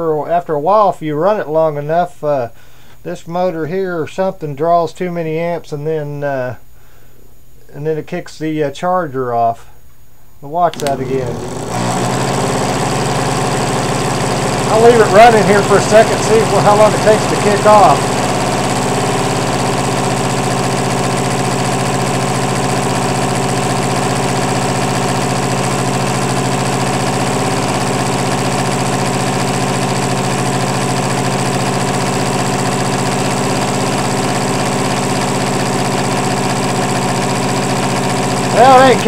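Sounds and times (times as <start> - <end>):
electric motor whine: 10.8 - 39.0.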